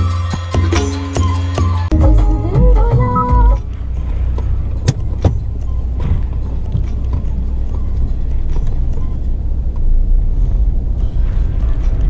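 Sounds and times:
car engine and road rumble: 1.6s - 12.0s.

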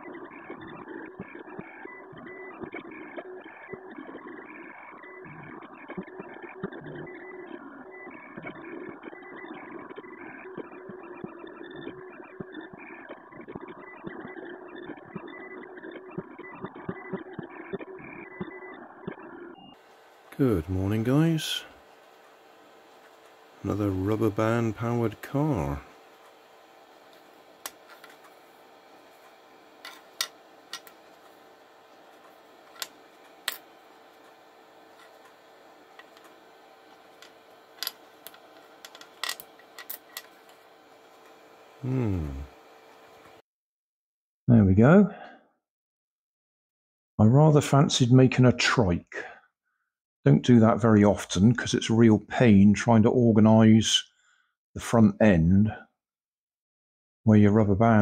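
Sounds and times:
printer motors whirring: 0.0s - 43.4s
faint steady hum: 19.6s - 43.4s
plastic parts clicking and tapping: 37.2s - 40.6s.

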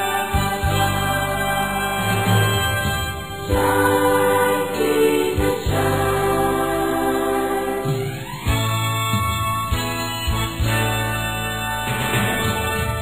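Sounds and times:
choir singing held notes: 0.0s - 9.3s
instrumental accompaniment: 0.0s - 13.0s.

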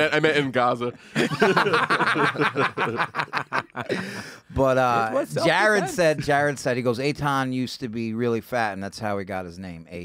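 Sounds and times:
men laughing: 0.0s - 6.6s.

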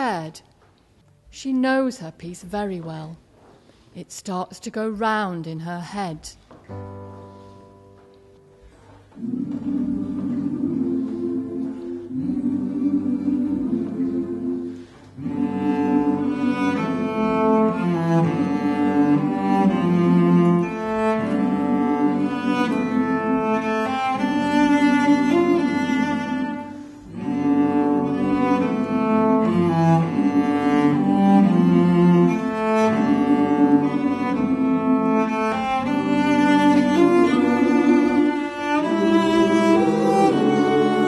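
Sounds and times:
bowed cello melody: 6.7s - 41.0s.

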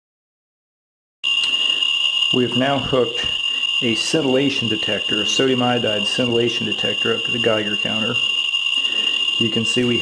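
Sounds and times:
rate meter high-pitched tone: 1.2s - 10.0s.

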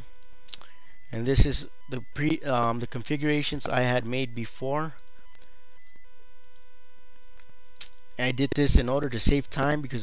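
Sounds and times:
steady electrical whine: 0.0s - 10.0s.

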